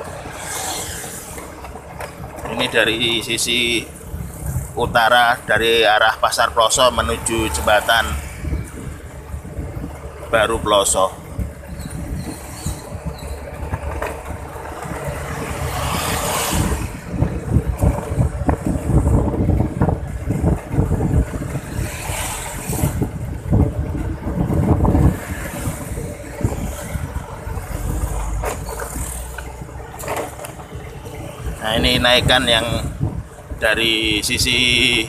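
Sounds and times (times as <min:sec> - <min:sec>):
motorcycle engine and road noise: 0:00.0 - 0:35.0
traffic: 0:00.0 - 0:35.0
wind buffeting microphone: 0:00.0 - 0:35.0.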